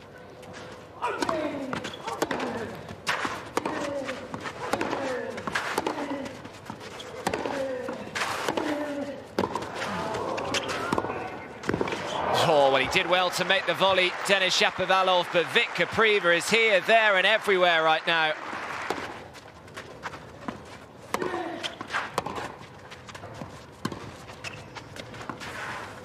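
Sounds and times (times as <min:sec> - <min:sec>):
racket hitting tennis ball: 0:01.1 - 0:06.2, 0:07.2 - 0:09.8, 0:21.1 - 0:22.6.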